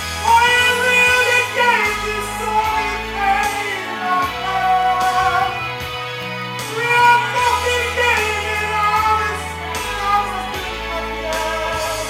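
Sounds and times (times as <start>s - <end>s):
pop backing track: 0.0s - 12.0s
man singing high notes: 0.2s - 5.8s, 6.7s - 12.0s.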